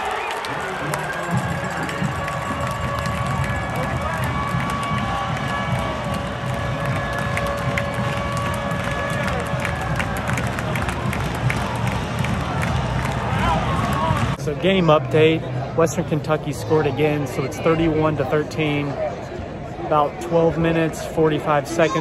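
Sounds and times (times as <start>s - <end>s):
crowd clapping: 0.0s - 14.4s
stadium crowd cheering: 0.0s - 22.0s.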